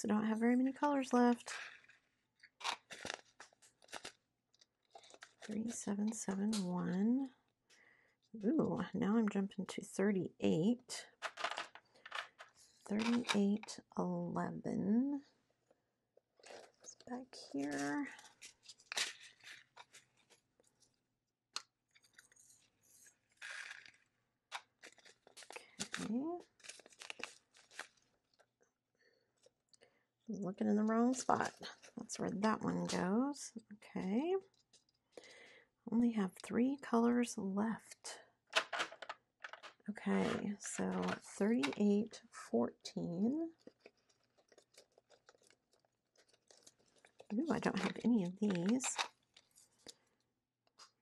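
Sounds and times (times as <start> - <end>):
plastic zip bag crinkling: 2.6 - 5.8, 21.9 - 28.5, 43.5 - 51.0
plastic crackles and clicks: 23.3 - 28.5, 38.5 - 41.9, 43.5 - 51.0.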